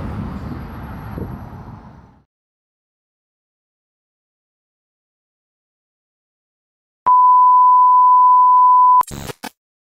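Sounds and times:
steady electronic beep: 0:07.1 - 0:09.1.

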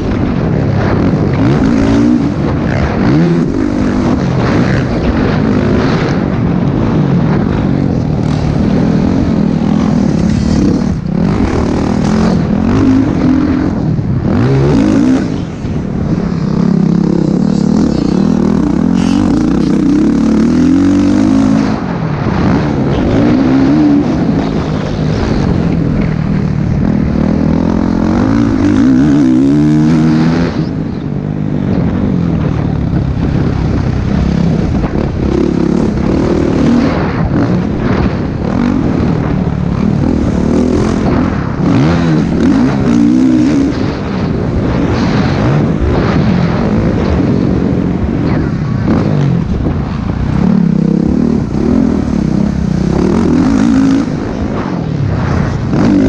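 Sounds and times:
motocross engine revving: 0:00.0 - 0:56.0.

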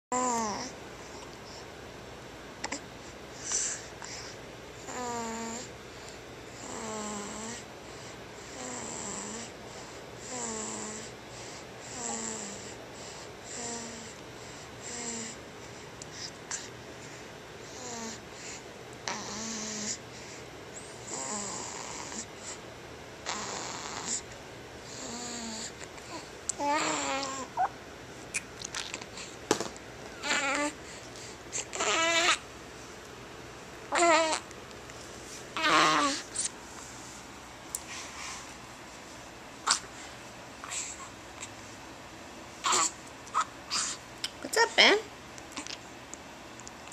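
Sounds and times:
infant fussing cries: 0:31.7 - 0:32.4, 0:35.6 - 0:36.2, 0:42.6 - 0:44.0.

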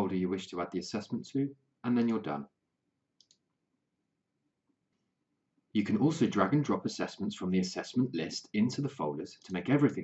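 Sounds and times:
computer mouse click: 0:03.2 - 0:03.5.

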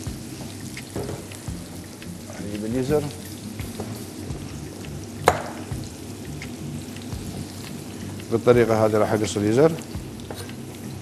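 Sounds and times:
onions sizzling in hot oil: 0:00.0 - 0:11.0.

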